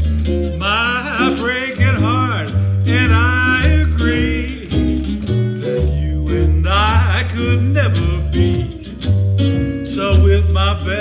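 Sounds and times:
jazz guitar: 0.0 - 11.0
upright bass walking: 0.0 - 11.0.

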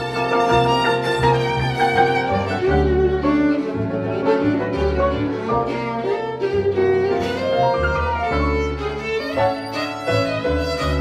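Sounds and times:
bowed violin melody: 0.0 - 11.0
double bass notes: 0.0 - 11.0
piano: 0.0 - 11.0.

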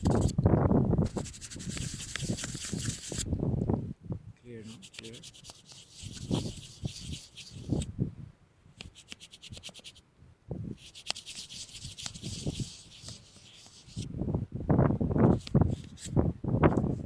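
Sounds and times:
fingers scratching camera body: 0.0 - 0.4, 1.0 - 3.2, 4.6 - 7.9, 8.8 - 10.0, 10.8 - 14.1.

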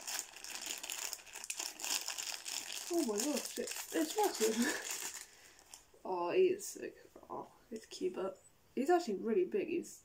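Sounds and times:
foil bag crinkling: 0.0 - 5.9.

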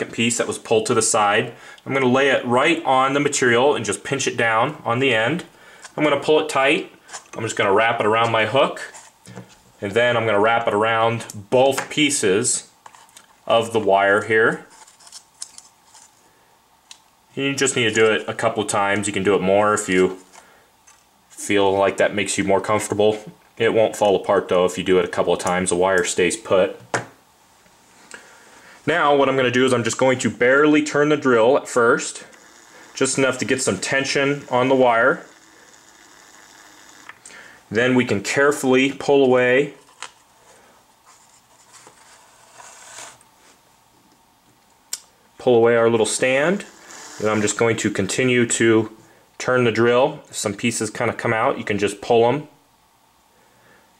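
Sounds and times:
wooden stand scraping: 41.1 - 43.2, 46.6 - 47.7.

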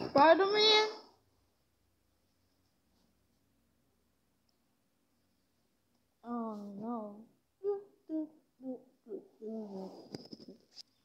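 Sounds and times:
child humming: 6.9 - 10.0.

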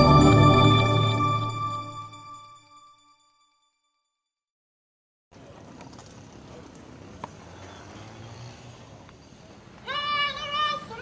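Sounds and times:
sustained pitched note: 0.0 - 2.8
low outdoor noise bed: 5.4 - 11.0.

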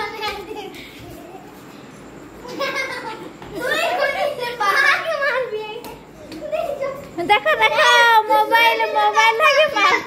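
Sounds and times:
children shouting excitedly: 6.4 - 10.0.

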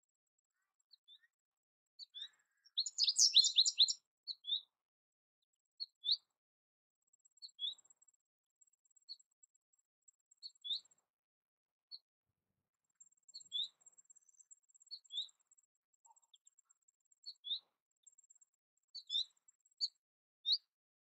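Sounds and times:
goldfinch chirping: 2.0 - 4.6, 13.3 - 13.7, 17.2 - 17.6, 19.0 - 20.6.

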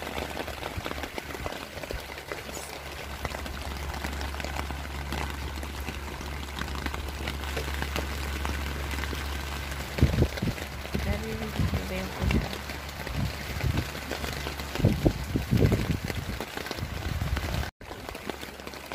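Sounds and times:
rain pattering on a tent: 0.0 - 18.9.

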